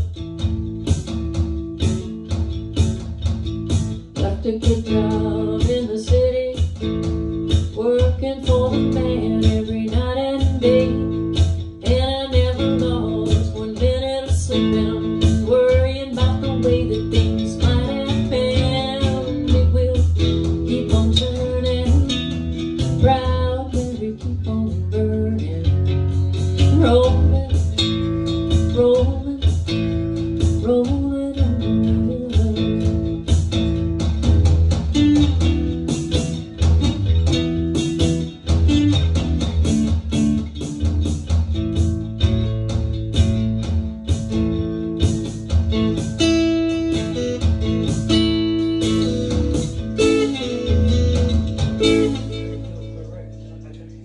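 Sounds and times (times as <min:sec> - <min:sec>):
bass line: 0:00.0 - 0:54.0
guitar plucked and strummed: 0:00.0 - 0:54.0.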